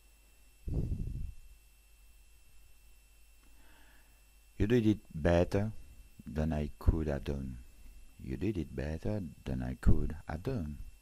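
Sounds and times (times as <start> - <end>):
faint steady hiss: 0.0 - 11.0
thin high-pitched hum: 0.0 - 11.0.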